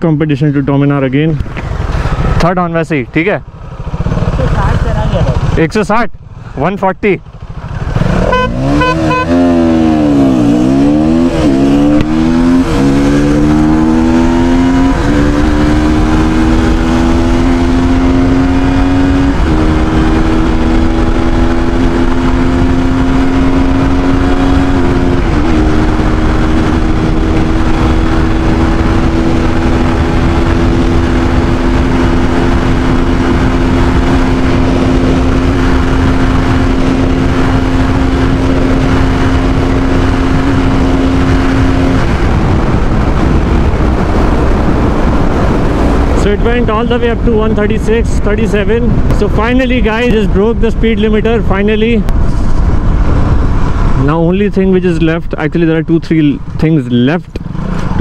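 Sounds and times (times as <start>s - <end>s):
motorcycle engine accelerating: 0.0s - 58.0s.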